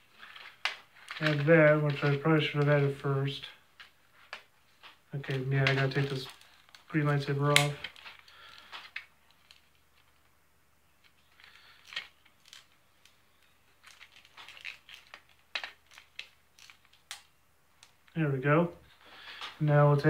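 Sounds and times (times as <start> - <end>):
plastic toy parts clicking: 13.8 - 18.0.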